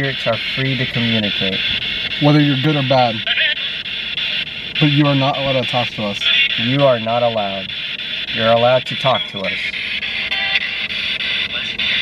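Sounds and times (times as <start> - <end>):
broken broadcast fragments: 0.0 - 12.0
radio static hiss: 0.0 - 12.0.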